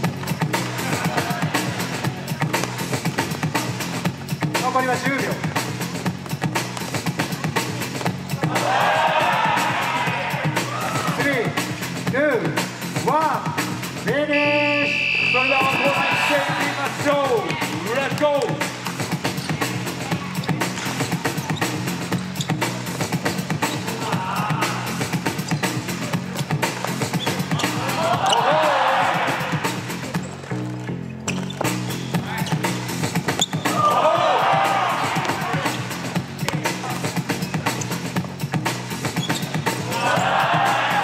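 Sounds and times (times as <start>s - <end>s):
hip-hop music with vocals: 0.0s - 6.1s, 15.4s - 30.2s, 31.8s - 41.0s
basketball bouncing on court: 36.4s - 36.8s.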